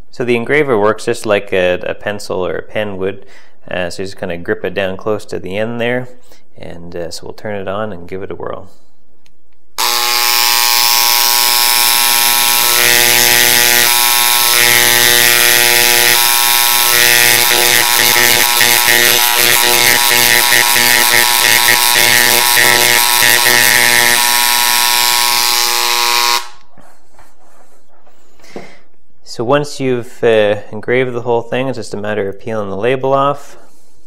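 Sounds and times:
electric engraver buzzing: 9.8 - 26.7.

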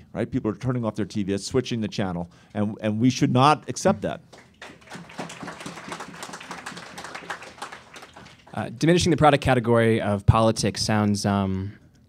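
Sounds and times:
audience applauding: 4.3 - 8.8.

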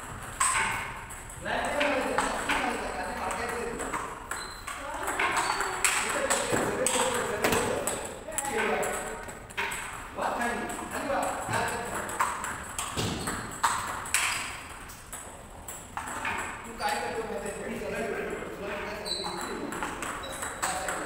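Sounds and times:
ping pong ball on bats: 0.0 - 17.2, 18.7 - 21.0
ping pong ball bouncing on table: 0.1 - 17.2, 18.8 - 21.0.

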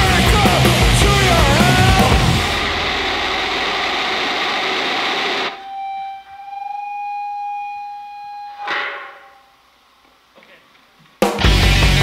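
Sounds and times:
punk rock band playing: 0.0 - 5.5, 11.2 - 12.0
held electric guitar note: 5.4 - 9.7.

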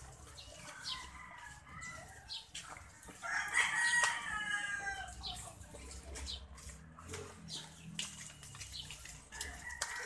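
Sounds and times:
rooster crowing: 3.2 - 5.1.

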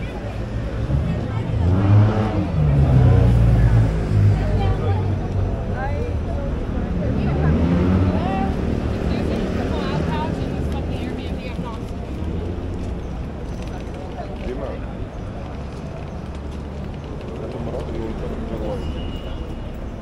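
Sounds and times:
people talking: 0.0 - 12.4, 17.3 - 19.3
motor vehicle engine: 0.0 - 20.0.

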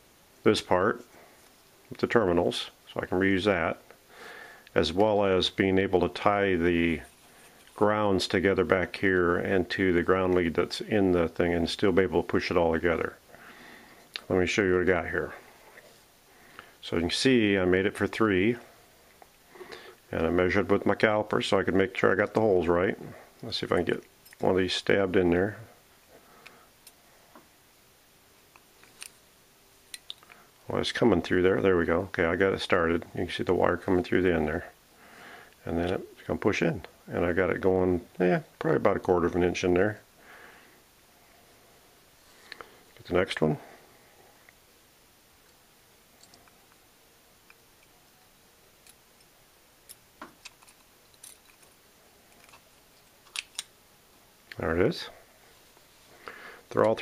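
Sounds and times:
small clicks and scrapes: 49.9 - 53.7.

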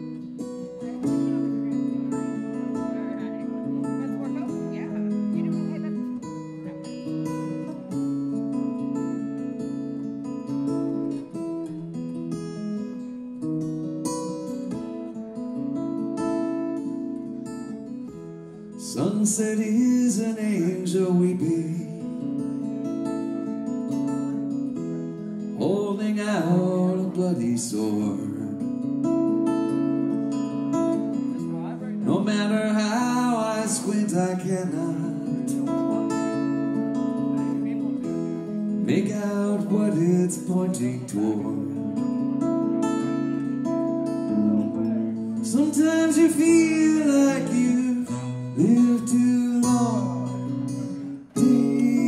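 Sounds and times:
electric guitar chords: 0.0 - 52.0.

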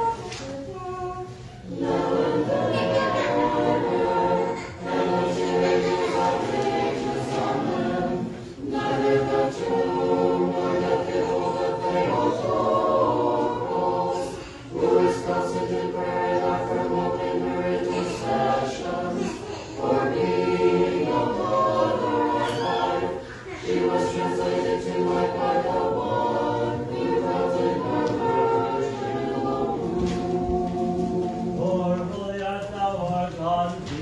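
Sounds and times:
church choir singing a cappella: 0.0 - 34.0.

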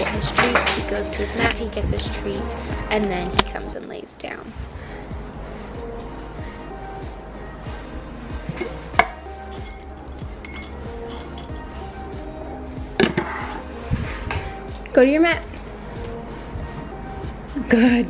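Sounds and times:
background music: 0.0 - 18.0
glass jar clinking: 8.5 - 11.6.

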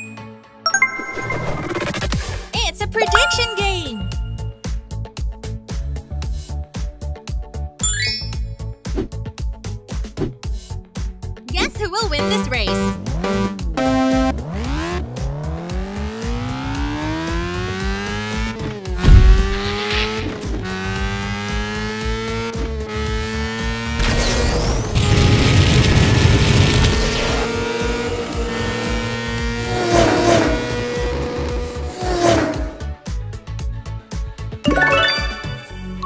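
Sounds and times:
cartoon engine revving whine: 12.2 - 15.0
loud thump: 19.0 - 19.9.

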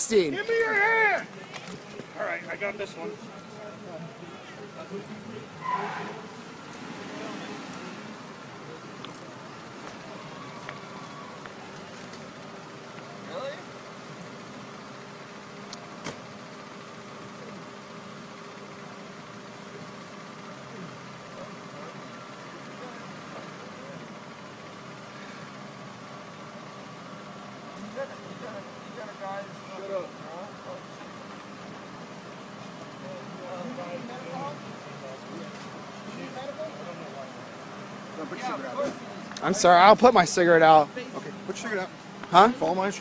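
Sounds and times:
idling vehicles humming: 0.0 - 43.0.

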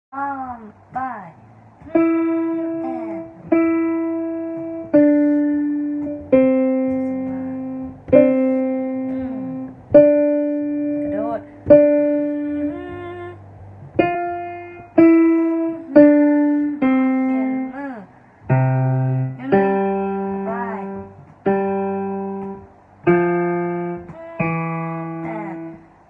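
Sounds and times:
slow piano melody: 1.8 - 26.0.

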